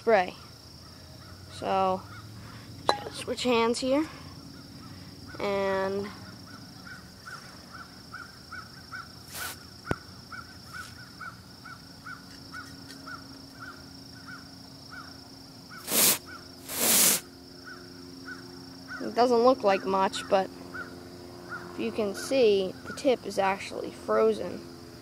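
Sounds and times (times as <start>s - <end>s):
compressed air can hissing: 9.3s - 9.6s, 15.8s - 17.2s.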